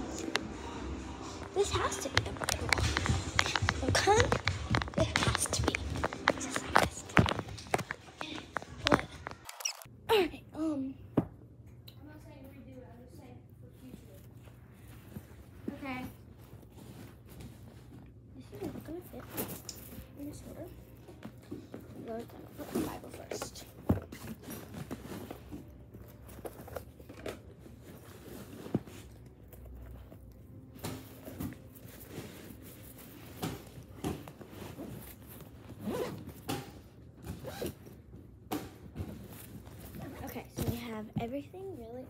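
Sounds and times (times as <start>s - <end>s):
clothes rustling: 1.2s - 9.9s, 13.8s - 42.0s
bag zipping: 34.6s - 36.6s, 37.2s - 38.0s.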